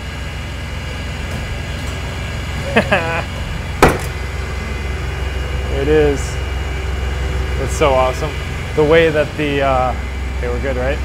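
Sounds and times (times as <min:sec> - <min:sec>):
lathe humming: 0:00.0 - 0:11.0.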